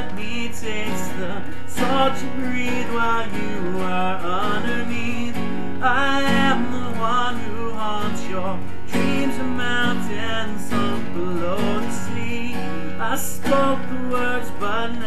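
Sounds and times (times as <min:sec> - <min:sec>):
acoustic guitar strumming: 0:00.0 - 0:15.0
person singing: 0:00.0 - 0:15.0.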